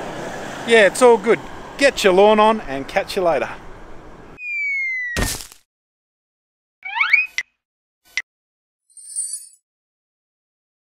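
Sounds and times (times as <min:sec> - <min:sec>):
falling whistle tone: 0:04.4 - 0:05.2
sharp whack: 0:05.2 - 0:05.6.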